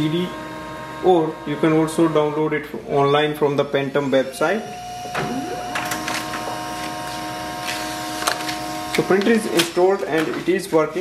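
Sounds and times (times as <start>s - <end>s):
laser printer whir and hum: 0.0s - 11.0s
printer rising whine: 4.0s - 9.6s.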